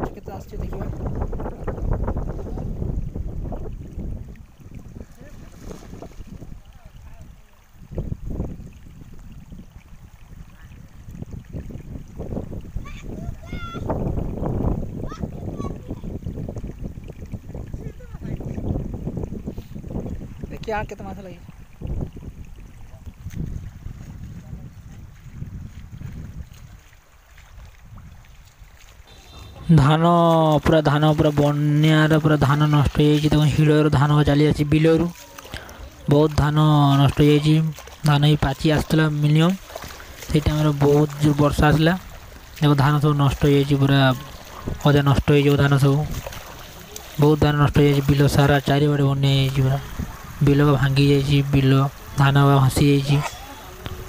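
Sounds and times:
wind buffeting microphone: 0.0 - 54.0
splash of shallow water: 0.6 - 54.0.

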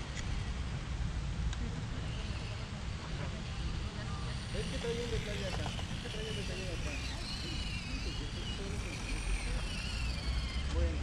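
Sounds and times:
distant voices: 0.0 - 11.0
electric motor and gearbox whine: 2.0 - 11.0.

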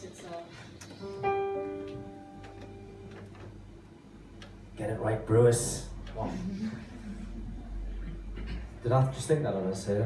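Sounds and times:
instrument chord ringing: 1.2 - 3.7.

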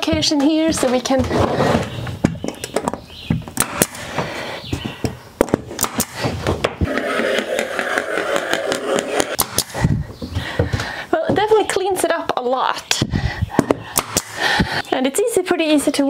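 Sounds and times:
scraping: 0.0 - 4.5.

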